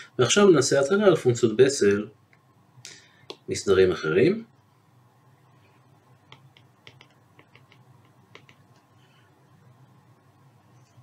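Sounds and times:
stylus tapping on tablet screen: 6.2s - 8.9s.

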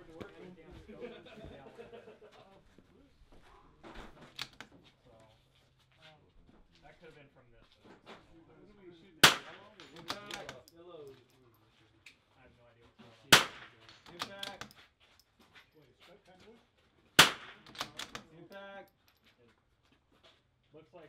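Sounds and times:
rifle shots: 9.2s - 10.6s, 13.3s - 14.6s, 17.2s - 18.2s.

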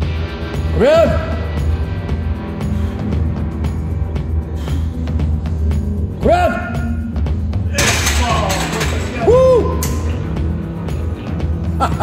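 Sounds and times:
barbell clanking in rack: 7.8s - 9.2s.

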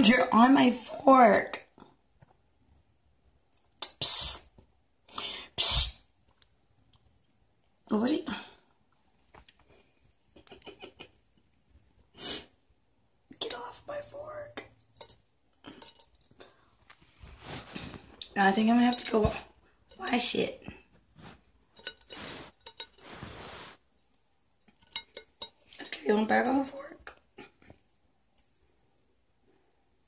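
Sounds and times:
fork clinking on plate: 15.0s - 16.3s, 21.8s - 23.2s, 24.8s - 25.7s.

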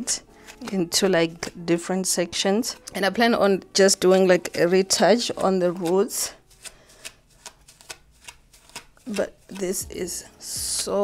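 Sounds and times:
comb pulled through tangled hair: 7.3s - 11.0s.

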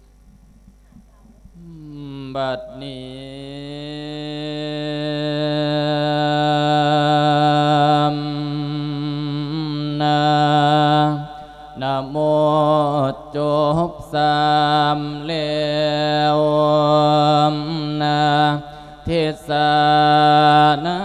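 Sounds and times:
man chanting: 1.1s - 21.0s.

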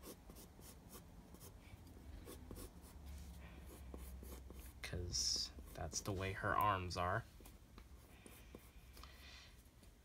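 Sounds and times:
pencil scratching on paper: 0.0s - 1.6s, 2.2s - 3.0s, 3.6s - 6.2s, 7.4s - 9.0s.

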